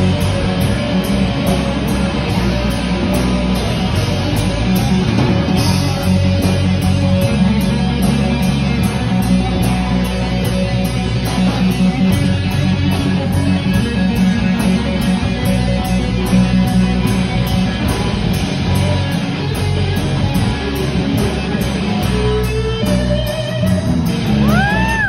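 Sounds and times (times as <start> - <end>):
electric guitar: 0.0 - 25.0
live rock band playing: 0.0 - 25.0.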